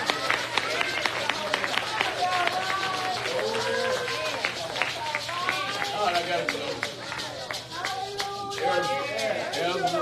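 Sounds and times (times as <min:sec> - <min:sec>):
quick sharp claps: 0:00.0 - 0:10.0
voices calling out in wavering cries: 0:00.0 - 0:10.0.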